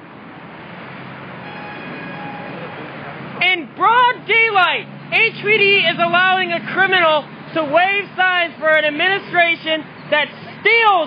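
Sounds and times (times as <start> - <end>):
vehicle engine humming: 0.0 - 10.7.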